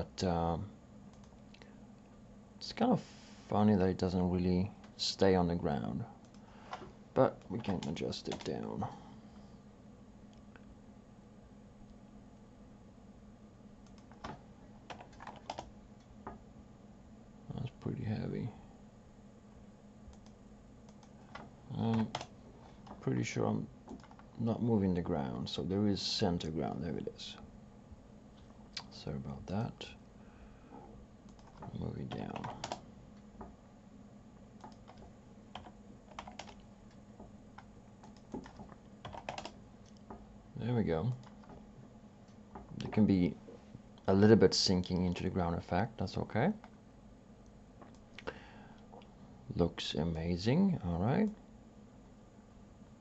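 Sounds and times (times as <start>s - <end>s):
faint low hum: 0.0s - 53.0s
computer keyboard keystrokes: 7.4s - 8.5s, 13.8s - 15.7s, 20.1s - 23.0s, 23.9s - 24.3s, 31.3s - 32.8s, 34.6s - 37.0s, 37.6s - 40.2s.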